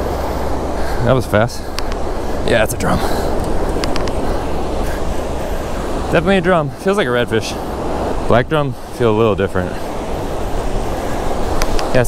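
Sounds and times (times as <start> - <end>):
surf rushing: 0.0 - 12.0
wind on microphone: 0.0 - 12.0
faint clicks: 1.7 - 2.0, 3.4 - 4.2, 11.6 - 11.9.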